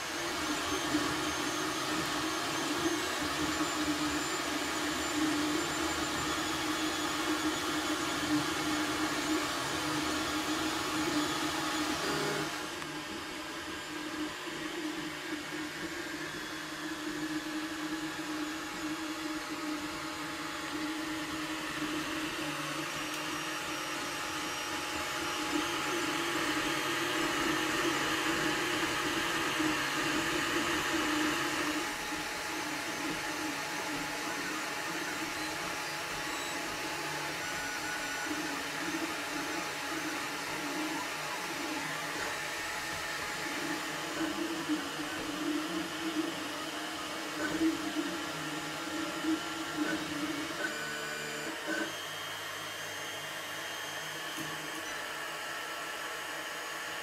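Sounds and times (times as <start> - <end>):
cooling fans whirring: 0.0 - 57.0.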